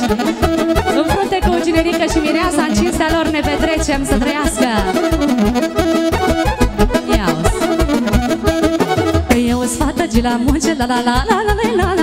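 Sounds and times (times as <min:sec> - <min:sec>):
steady bass beat: 0:00.0 - 0:09.6
accordion and saxophone dance music: 0:00.0 - 0:12.0.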